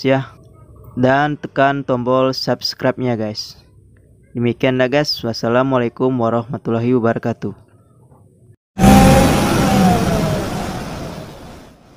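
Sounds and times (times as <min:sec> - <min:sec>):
car engine revving: 0:08.8 - 0:11.8.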